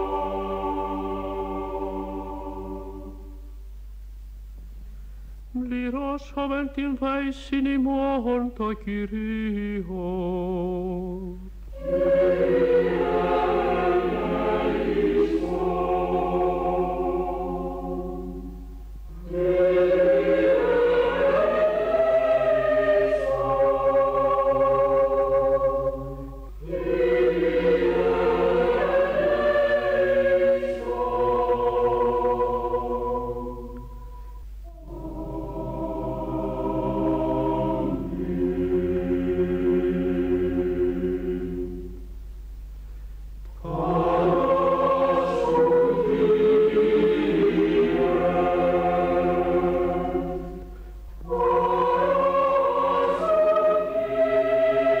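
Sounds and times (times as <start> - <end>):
choir singing sustained chords: 0.0 - 4.0, 5.4 - 55.0.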